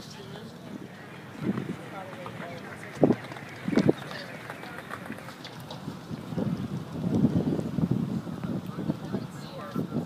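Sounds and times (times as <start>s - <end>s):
faint background voices: 0.0s - 10.0s
wind buffeting microphone: 0.0s - 10.0s.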